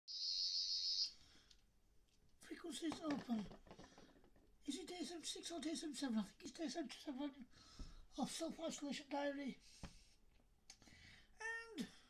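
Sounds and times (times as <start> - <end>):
high-pitched electronic toy buzz: 0.1 - 1.1.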